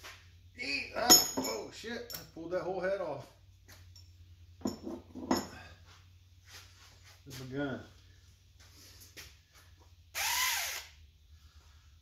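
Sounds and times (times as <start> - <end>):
low steady hum: 0.0 - 12.0
metal engine parts clinking: 0.8 - 2.6, 3.7 - 5.8.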